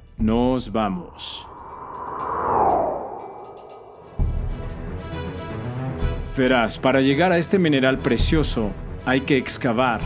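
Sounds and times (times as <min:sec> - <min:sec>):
whoosh sound effect: 0:01.1 - 0:04.8.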